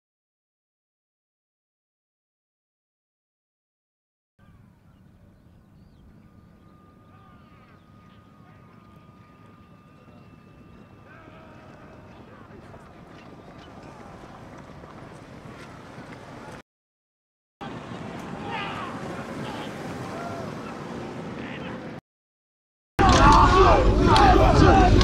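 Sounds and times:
faint steady high tone: 4.4s - 12.1s
indistinct background voices: 7.0s - 16.6s.

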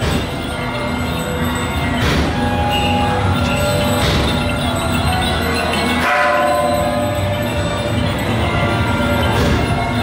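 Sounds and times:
continuous percussion: 0.0s - 10.0s.

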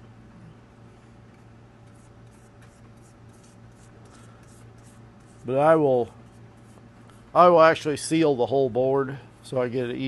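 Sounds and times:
steady low hum: 0.0s - 10.0s
paintbrush scratchy strokes: 1.8s - 6.8s.

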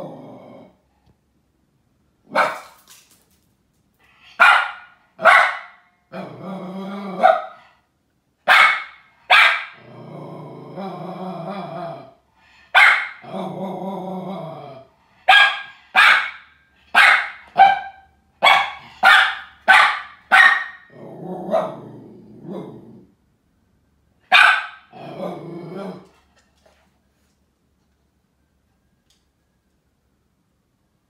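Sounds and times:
dog barking sharply: 2.3s - 2.8s, 4.4s - 5.9s, 8.5s - 9.8s, 12.8s - 13.2s, 15.3s - 20.9s, 24.3s - 24.9s.

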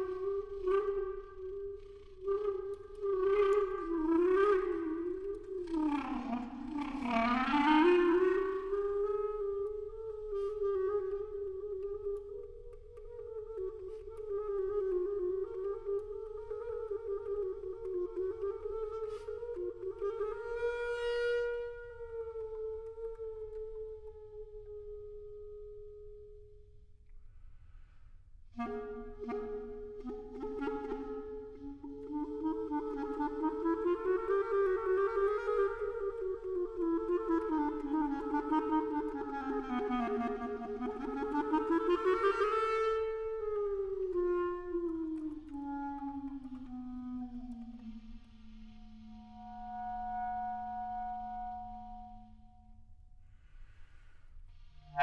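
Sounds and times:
solo clarinet playing: 0.0s - 27.0s, 28.5s - 53.0s, 54.6s - 55.0s.

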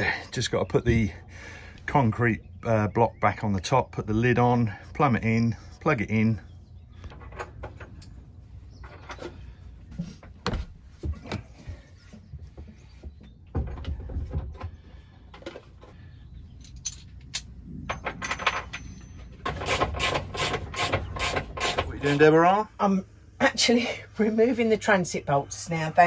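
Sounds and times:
metallic knocks and clinks: 16.5s - 19.7s.

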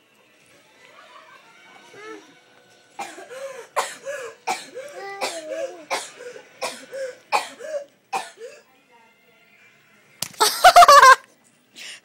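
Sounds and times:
child coughing harshly: 3.0s - 8.7s.

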